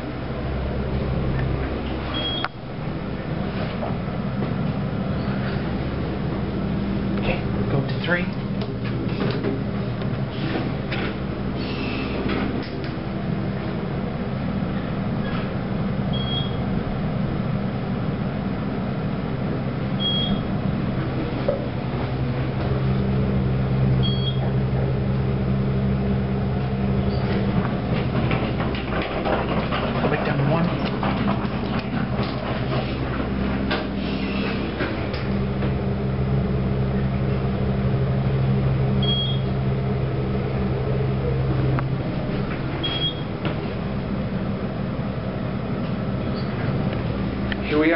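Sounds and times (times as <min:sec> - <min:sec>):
elevator hum: 0:00.0 - 0:47.9.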